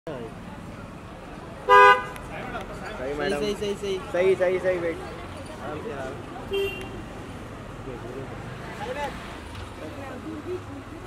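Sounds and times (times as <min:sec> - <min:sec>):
low hum of street noise: 0:00.1 - 0:11.0
vehicle horn honk: 0:01.7 - 0:02.2, 0:06.5 - 0:07.0.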